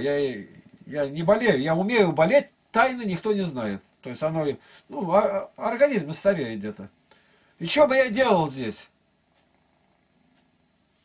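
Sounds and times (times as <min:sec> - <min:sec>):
cat purring: 0:09.4 - 0:10.4.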